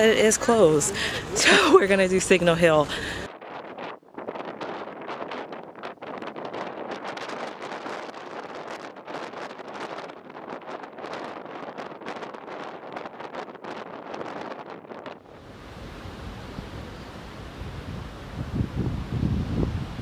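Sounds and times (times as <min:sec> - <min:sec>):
wind on microphone: 0:00.0 - 0:20.0.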